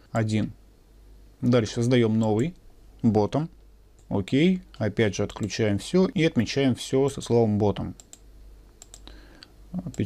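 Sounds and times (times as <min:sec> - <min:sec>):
computer mouse clicking: 0:08.0 - 0:09.2.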